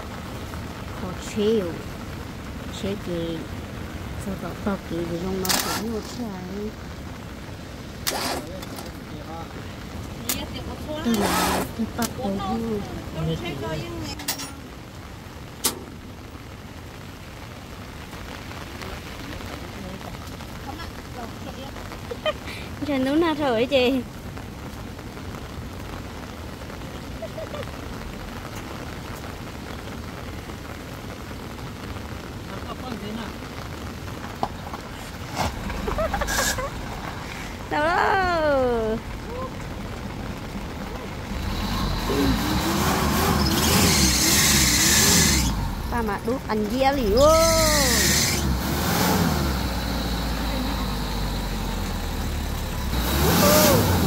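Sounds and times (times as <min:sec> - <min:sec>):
steady rain falling: 0:00.0 - 0:54.0
truck diesel engine revving: 0:11.0 - 0:13.6, 0:41.2 - 0:54.0
loud rushing hiss: 0:41.8 - 0:45.9.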